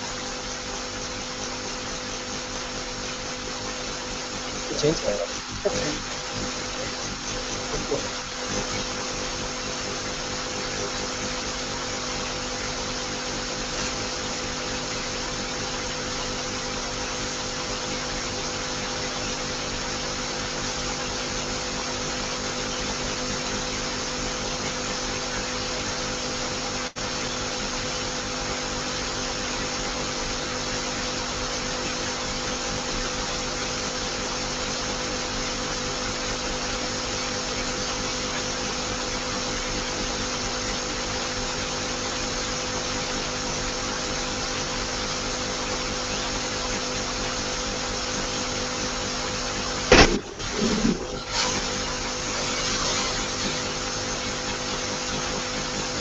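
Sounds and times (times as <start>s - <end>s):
constant hum: 4.5s - 9.0s, 49.9s - 53.7s.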